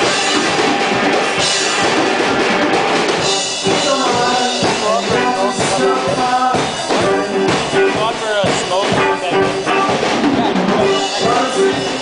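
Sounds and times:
live rock band: 0:00.0 - 0:12.0
steady drum beat: 0:00.0 - 0:12.0.

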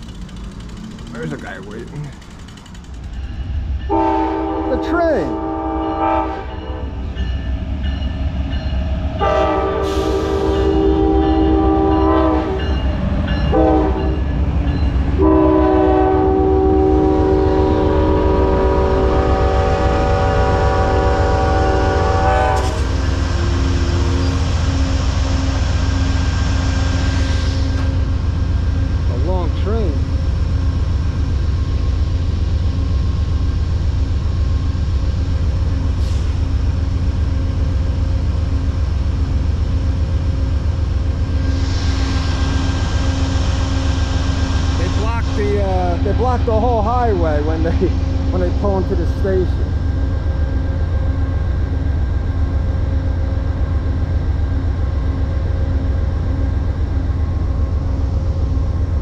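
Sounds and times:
train rumble: 0:00.0 - 0:59.0
locomotive horn blasts: 0:03.9 - 0:07.0, 0:09.2 - 0:12.7, 0:13.5 - 0:14.2, 0:15.2 - 0:24.2.

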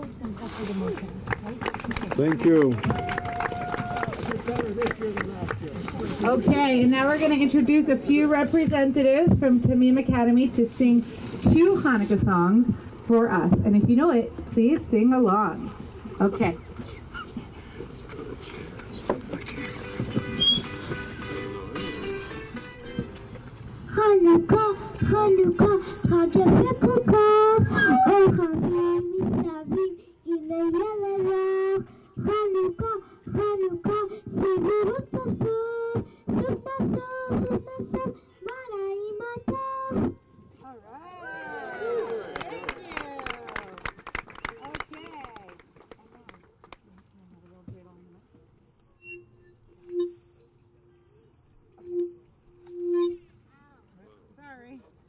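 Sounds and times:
crowd voices: 0:00.0 - 0:29.2.

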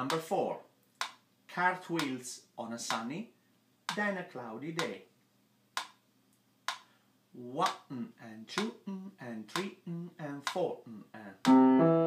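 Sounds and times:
sharp metronome clicks: 0:02.0 - 0:02.2, 0:11.4 - 0:11.9.

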